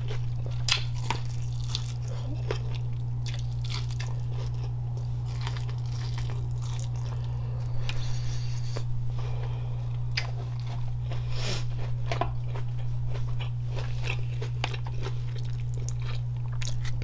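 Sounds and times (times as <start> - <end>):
chewing and biting food: 0.0 - 17.0
steady low hum: 0.0 - 17.0.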